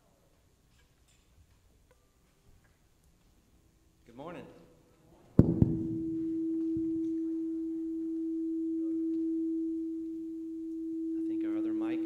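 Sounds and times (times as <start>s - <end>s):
tuning fork tone: 5.6s - 12.0s.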